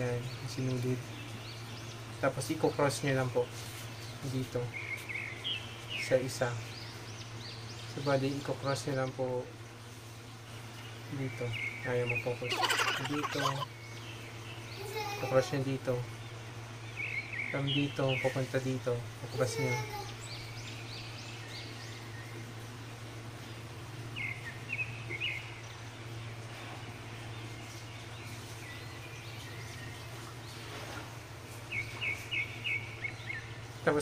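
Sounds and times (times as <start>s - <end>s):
bird chirping: 11.6s - 14.7s.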